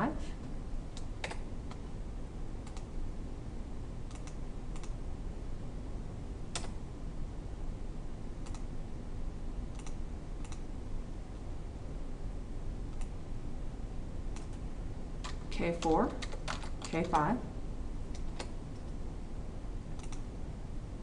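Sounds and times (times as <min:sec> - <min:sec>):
low background hum: 0:00.0 - 0:21.0
computer keyboard keystrokes: 0:01.0 - 0:01.8, 0:02.6 - 0:02.9, 0:04.1 - 0:05.0, 0:06.5 - 0:06.8, 0:08.4 - 0:08.7, 0:09.7 - 0:10.6, 0:15.2 - 0:17.2, 0:20.0 - 0:20.2.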